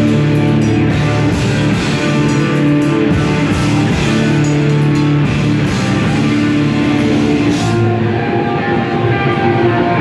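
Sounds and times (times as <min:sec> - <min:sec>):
distorted electric guitar: 0:00.0 - 0:10.0
live metal band playing: 0:00.0 - 0:10.0.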